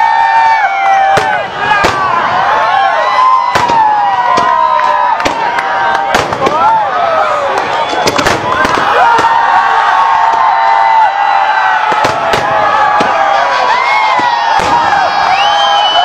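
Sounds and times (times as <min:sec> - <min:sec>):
crowd voices: 0:00.0 - 0:16.0.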